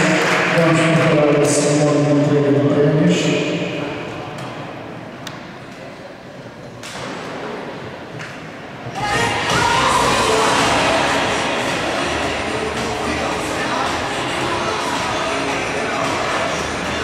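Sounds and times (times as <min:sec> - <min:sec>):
crowd noise: 0:00.0 - 0:17.0
sharp knocks in echoing hall: 0:06.8 - 0:08.5
music: 0:09.0 - 0:17.0.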